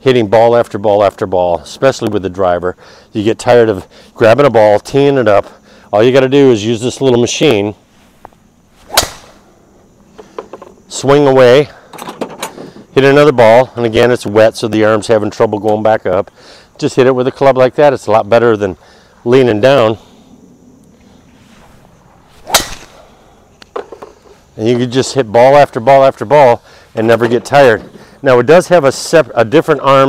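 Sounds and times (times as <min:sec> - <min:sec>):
golf club swish: 0:08.0 - 0:09.4, 0:22.4 - 0:23.0
golf club cracking ball: 0:08.9 - 0:09.4, 0:22.4 - 0:23.0.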